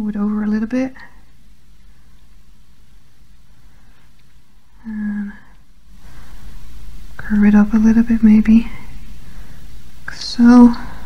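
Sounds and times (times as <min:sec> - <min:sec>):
soft hiss: 0:00.0 - 0:11.0
person humming: 0:04.8 - 0:05.5.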